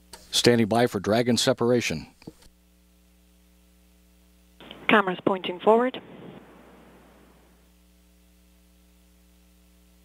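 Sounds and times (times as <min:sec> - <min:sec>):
communications loop hiss: 0:00.0 - 0:10.0
electrical hum: 0:00.0 - 0:10.0.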